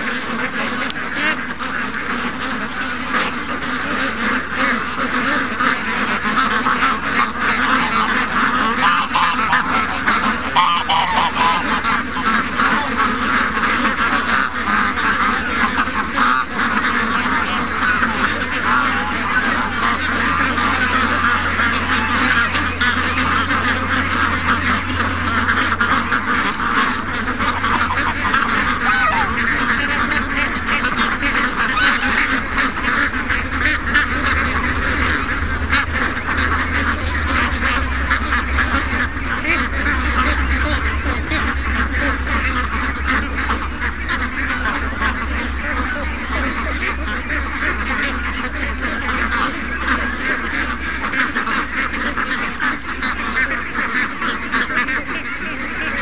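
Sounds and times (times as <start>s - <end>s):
ducks quacking: 0.0s - 56.0s
geese honking: 0.0s - 56.0s.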